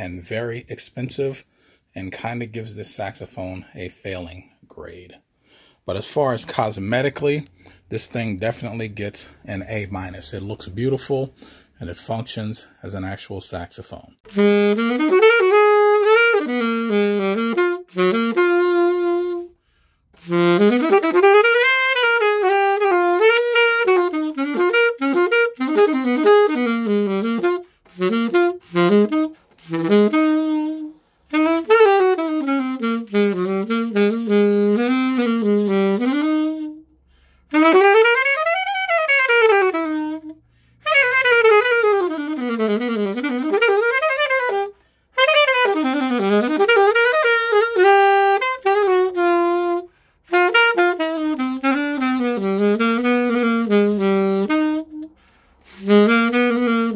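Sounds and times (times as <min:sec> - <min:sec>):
alto saxophone quick runs: 0:14.3 - 0:19.6, 0:20.2 - 0:36.9, 0:37.5 - 0:56.9.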